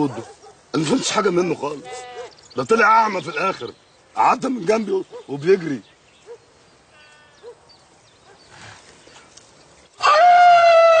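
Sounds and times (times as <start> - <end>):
farm animal calling: 0.0 - 3.8, 6.2 - 9.3.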